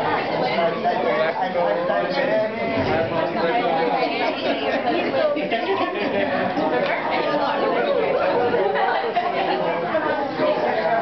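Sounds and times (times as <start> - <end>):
party chatter: 0.0 - 11.0.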